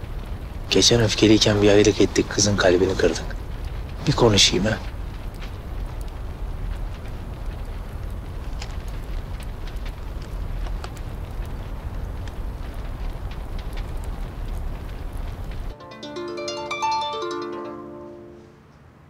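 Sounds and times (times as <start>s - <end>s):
open fire rumbling and crackling: 0.0s - 17.9s
plucked melody: 15.8s - 18.6s.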